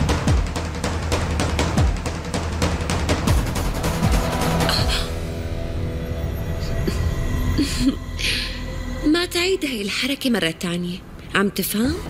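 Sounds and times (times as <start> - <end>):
low rumbling dramatic score: 0.0 - 11.3.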